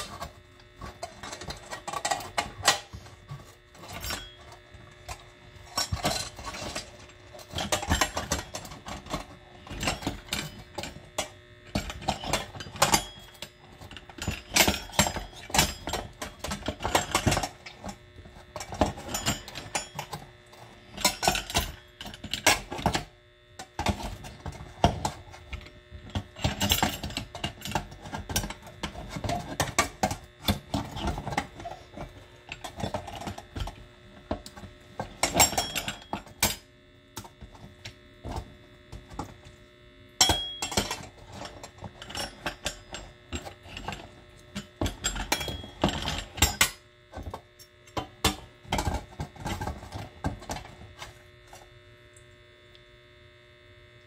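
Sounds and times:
food mill clicking and scraping: 0.0s - 36.6s
faint steady hum: 0.0s - 54.0s.

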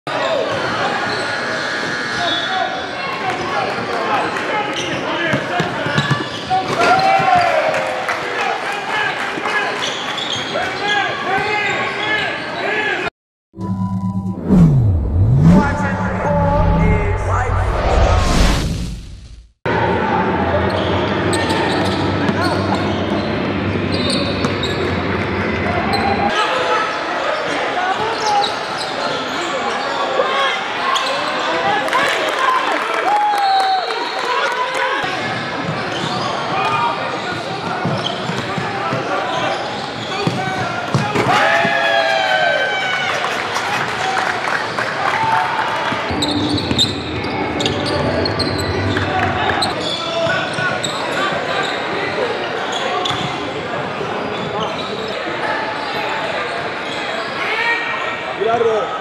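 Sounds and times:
players and spectators voices: 0.1s - 13.1s, 19.7s - 59.0s.

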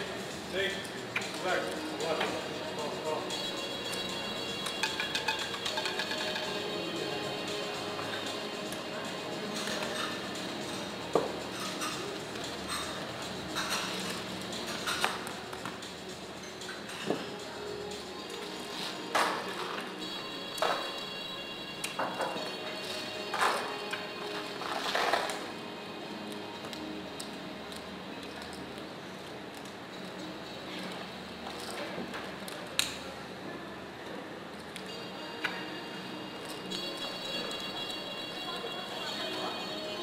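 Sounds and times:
background music: 0.0s - 33.0s, 34.4s - 40.0s.

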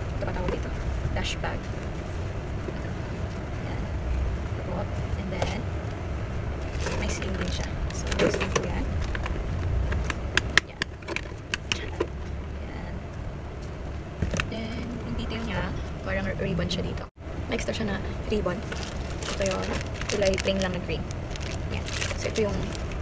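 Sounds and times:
steady low rumble: 0.0s - 23.0s
fabric bag rustling: 18.6s - 23.0s.

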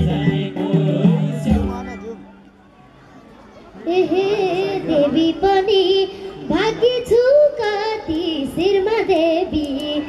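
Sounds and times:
girl singing into a microphone: 3.8s - 10.0s.

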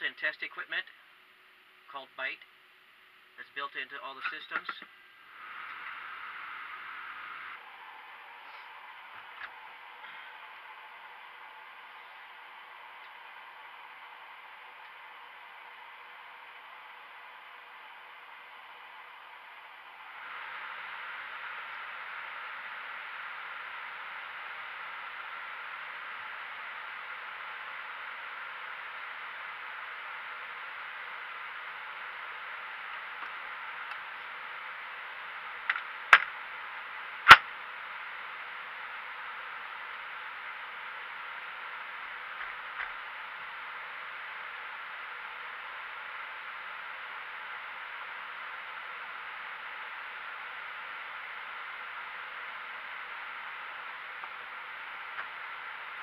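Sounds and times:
fans and airflow hissing: 0.0s - 56.0s.

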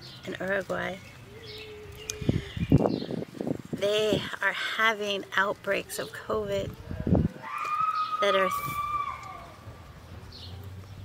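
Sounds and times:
bird chirp: 0.0s - 3.3s, 10.0s - 11.0s.

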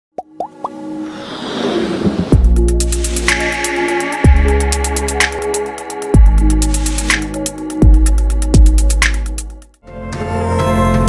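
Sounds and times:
whoosh: 0.9s - 3.6s.

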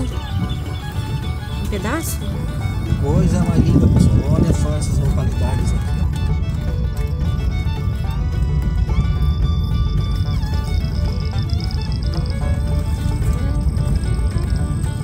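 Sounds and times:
car rumbling on dirt road: 0.0s - 15.0s
music with held notes: 0.0s - 15.0s.

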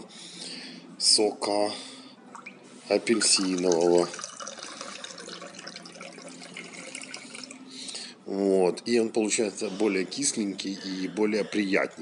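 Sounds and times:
juice trickling into a glass: 2.2s - 8.0s.

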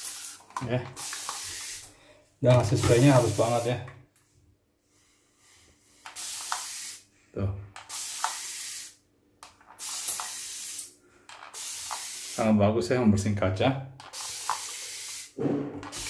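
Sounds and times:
spray bottle hissing sprays: 0.0s - 1.9s, 2.6s - 3.7s, 6.0s - 7.1s, 7.8s - 9.0s, 9.8s - 12.4s, 14.1s - 16.0s.

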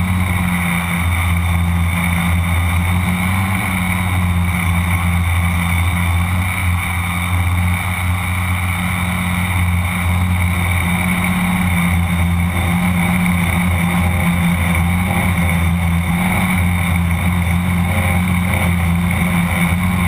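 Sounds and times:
drone motors and propellers humming: 0.0s - 20.0s.

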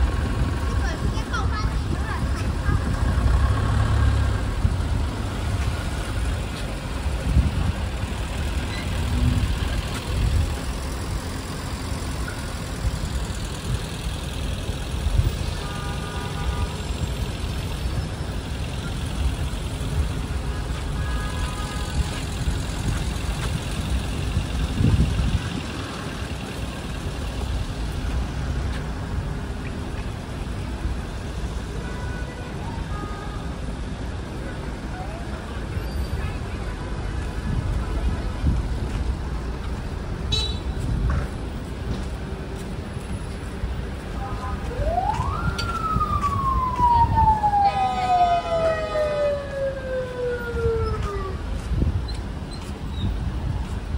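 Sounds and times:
cars and bus engines idling: 0.0s - 53.9s.

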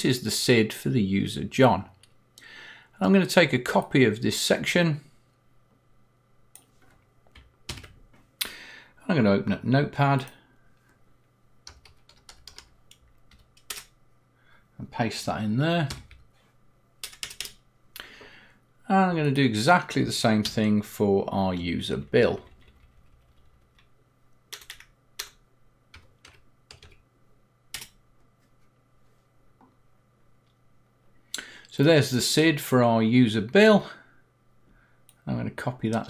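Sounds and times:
faint keyboard typing: 6.6s - 8.3s, 11.6s - 14.0s, 15.8s - 16.4s, 17.0s - 17.6s, 21.9s - 27.1s, 27.7s - 28.5s.

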